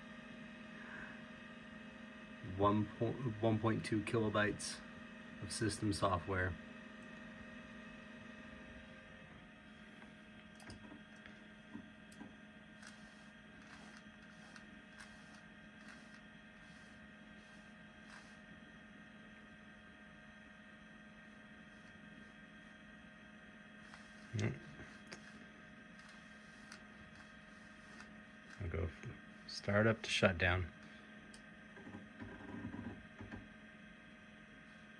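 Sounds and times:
computer hum: 0.0s - 34.9s.

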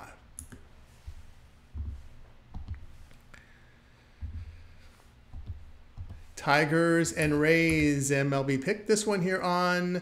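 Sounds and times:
soft low thumps: 0.5s - 3.4s, 4.1s - 8.1s
man speaking: 6.4s - 10.0s.

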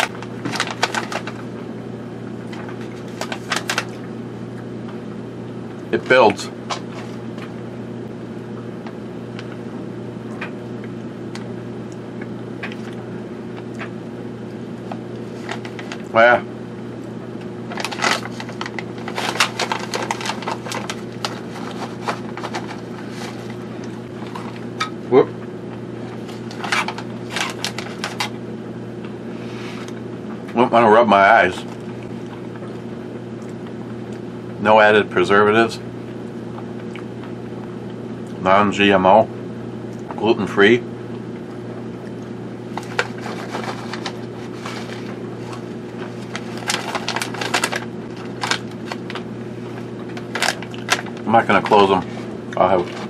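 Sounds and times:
low room hum: 0.0s - 53.0s
plastic pouch crackling: 17.7s - 24.4s, 42.7s - 49.3s.

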